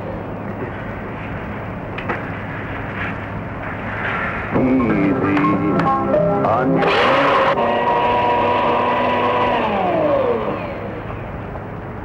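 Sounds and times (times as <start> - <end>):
electric blender motor whine: 6.8 - 11.1.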